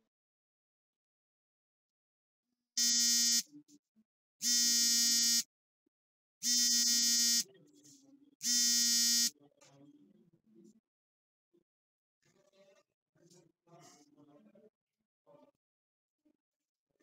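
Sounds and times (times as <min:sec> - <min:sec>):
smartphone ringing: 0:02.8 - 0:03.4, 0:04.4 - 0:05.5, 0:06.4 - 0:07.4, 0:08.4 - 0:09.3.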